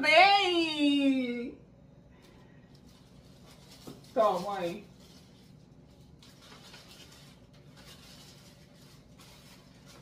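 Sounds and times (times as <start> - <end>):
low room hum: 0.0 - 10.0
plastic wrapper crinkling: 2.2 - 10.0.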